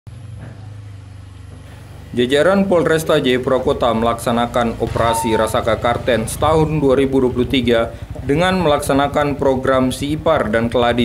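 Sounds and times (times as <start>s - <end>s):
motorcycle engine running: 0.1s - 11.0s.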